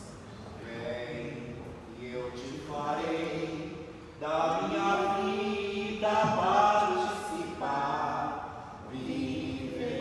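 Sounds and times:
voices singing slow chant: 0.6 - 10.0.

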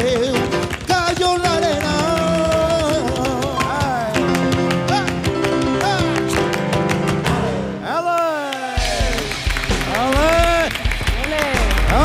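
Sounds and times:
audience applauding: 8.1 - 12.0.

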